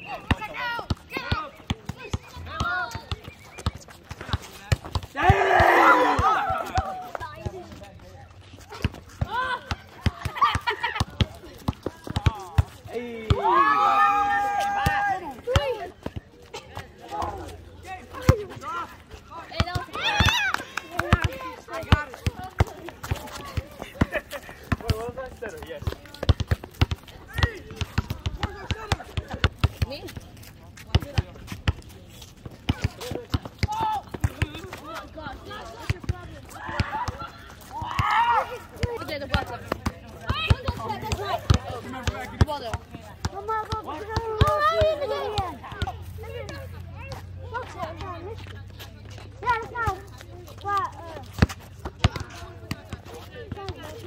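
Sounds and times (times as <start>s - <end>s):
players calling out: 0.0s - 30.2s, 32.7s - 54.0s.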